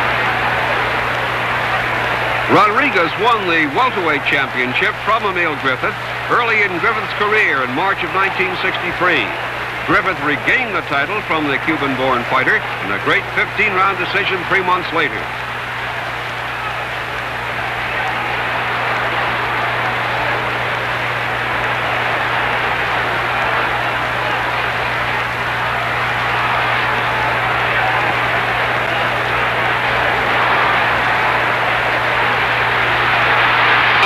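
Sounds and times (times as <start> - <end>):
crowd din of many voices: 0.0 - 34.0.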